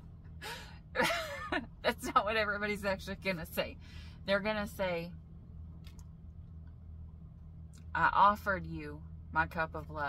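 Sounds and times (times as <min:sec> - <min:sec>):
woman gasping: 0:00.4 - 0:00.8.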